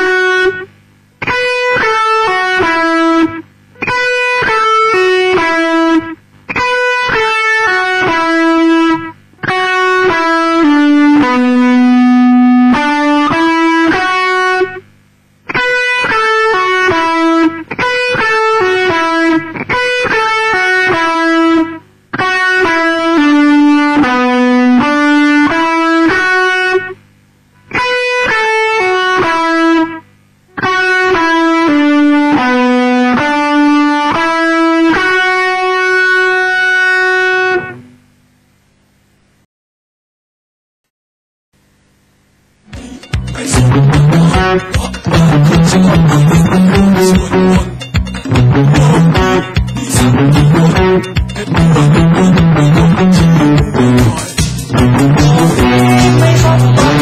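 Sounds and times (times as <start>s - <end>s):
electric guitar solo: 0.0s - 14.9s, 15.5s - 27.0s, 27.6s - 37.9s, 42.7s - 57.0s.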